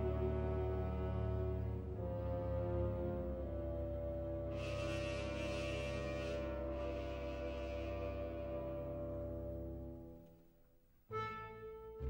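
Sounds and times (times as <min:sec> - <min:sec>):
held brass chord: 0:00.0 - 0:10.2, 0:11.1 - 0:12.0
orchestral music: 0:00.0 - 0:10.4, 0:11.1 - 0:12.0.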